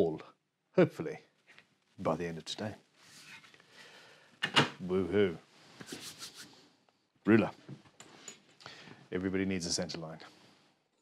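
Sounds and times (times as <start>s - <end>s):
faint rustling of wood handled: 1.3s - 3.8s.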